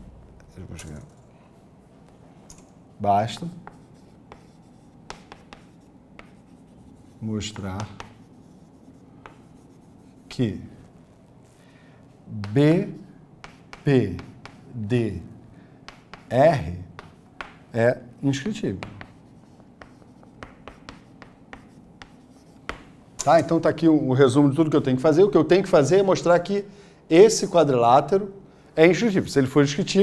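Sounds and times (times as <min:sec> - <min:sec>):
chalk scratching on chalkboard: 0:03.1 - 0:11.6, 0:12.4 - 0:14.8, 0:15.9 - 0:22.9.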